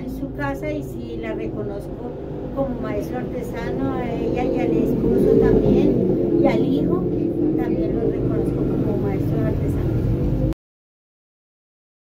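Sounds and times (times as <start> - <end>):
woman speaking: 0.0 - 10.5
low background rumble: 0.0 - 10.6.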